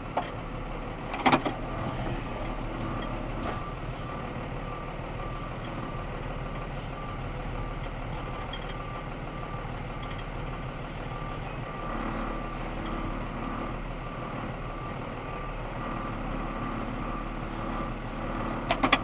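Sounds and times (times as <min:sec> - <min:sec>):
truck engine running: 0:00.0 - 0:19.0
truck reversing alarm beeping: 0:00.0 - 0:19.0.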